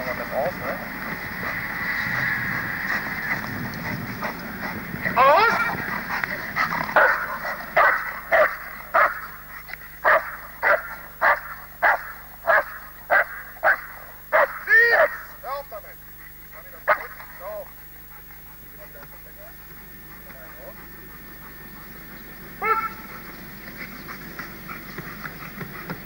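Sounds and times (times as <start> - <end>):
dog barking: 6.9 - 9.4, 10.0 - 15.3, 16.6 - 17.7, 22.6 - 23.2
dog whining yelp: 22.6 - 23.2.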